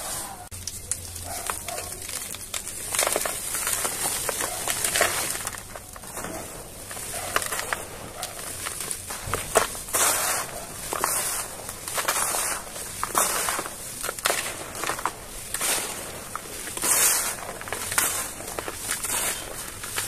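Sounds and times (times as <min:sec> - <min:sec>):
dry dirt poured into bucket: 0:00.0 - 0:20.0.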